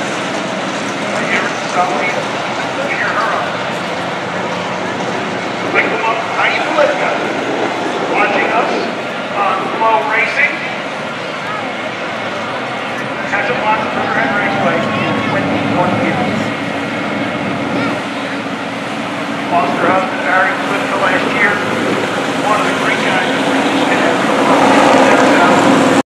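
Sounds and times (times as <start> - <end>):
vehicle engines running: 0.0 - 26.0
indistinct voices: 0.9 - 26.0.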